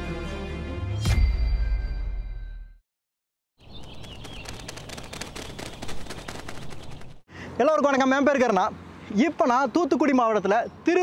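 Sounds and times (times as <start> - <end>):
bird colony clicks and chatter: 3.6 - 7.2.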